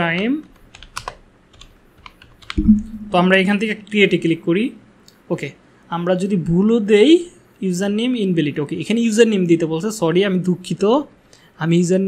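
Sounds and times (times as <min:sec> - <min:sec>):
keyboard typing: 0:00.0 - 0:03.3.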